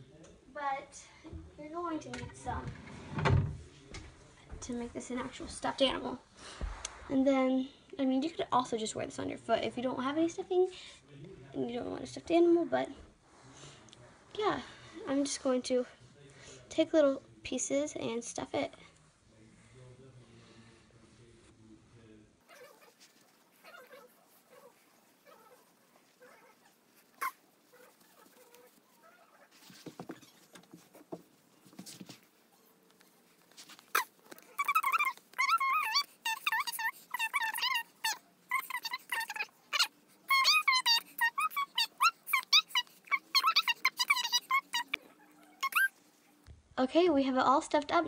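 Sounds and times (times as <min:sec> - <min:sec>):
faint clicks and rustling: 0:22.5 - 0:35.5
high-pitched sped-up voice chattering: 0:34.6 - 0:45.0.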